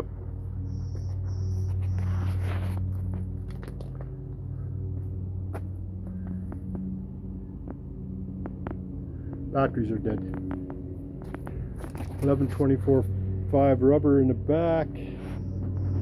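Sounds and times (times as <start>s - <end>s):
machine humming: 0.0s - 16.0s.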